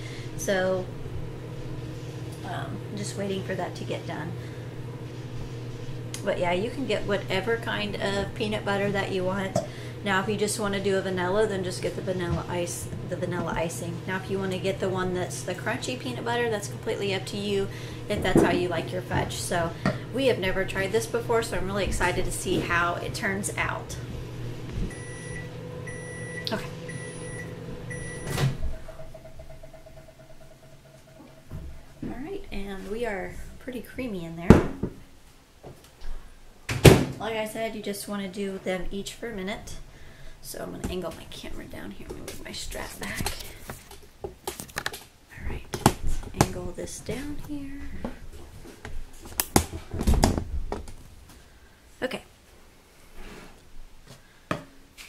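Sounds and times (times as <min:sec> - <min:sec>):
microwave oven humming: 0:00.0 - 0:35.0
short beeps: 0:24.9 - 0:28.4.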